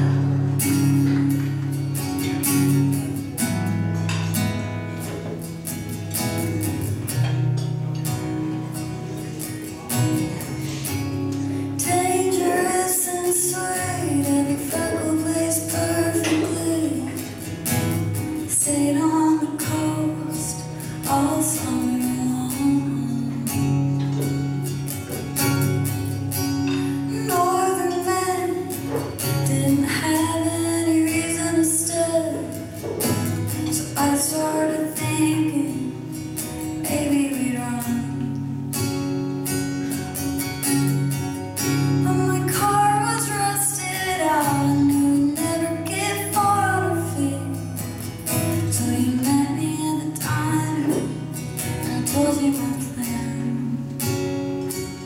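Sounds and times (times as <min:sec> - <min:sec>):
strummed acoustic guitar: 0:00.0 - 0:55.0
woman singing: 0:11.6 - 0:17.6, 0:18.2 - 0:24.0, 0:27.0 - 0:38.7, 0:41.9 - 0:54.2.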